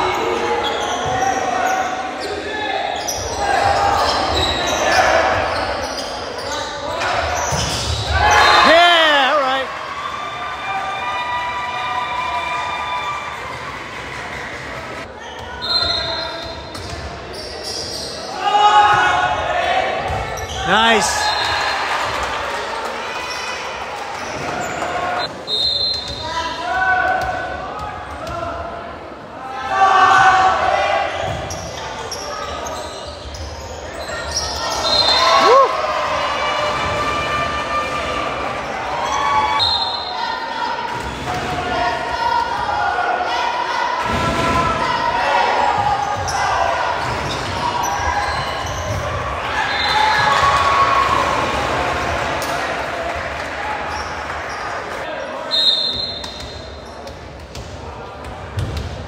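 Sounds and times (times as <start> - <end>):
crowd shouting and cheering: 6.8 - 16.0, 18.2 - 25.5, 34.2 - 56.8.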